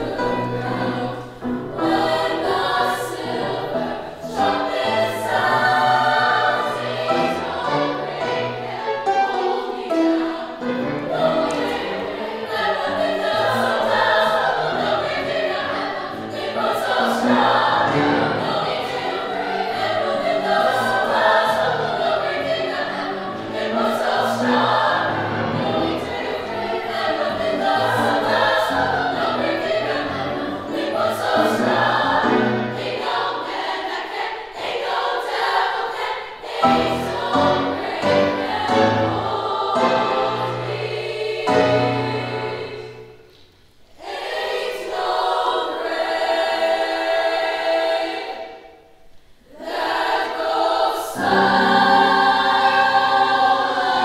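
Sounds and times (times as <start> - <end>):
grand piano accompaniment: 0.0 - 34.6, 35.2 - 43.9, 50.1 - 54.0
girls' choir singing gospel: 0.0 - 54.0.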